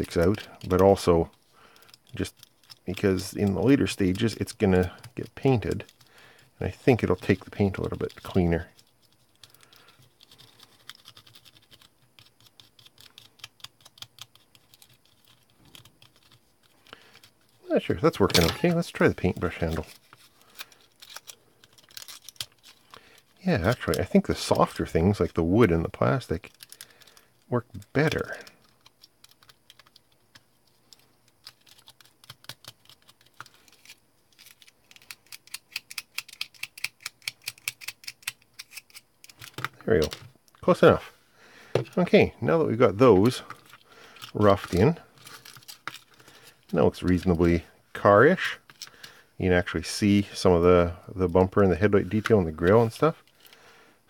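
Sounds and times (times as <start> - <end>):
aluminium foil crinkling: 0.0 - 40.8, 43.2 - 47.6.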